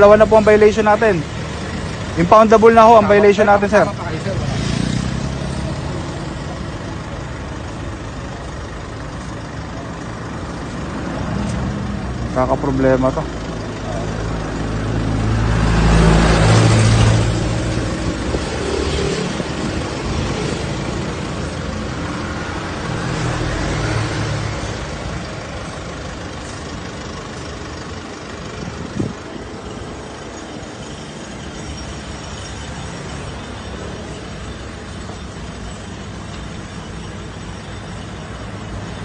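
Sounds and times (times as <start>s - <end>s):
traffic rumble: 0.0s - 39.0s
vehicle engine running: 0.0s - 39.0s.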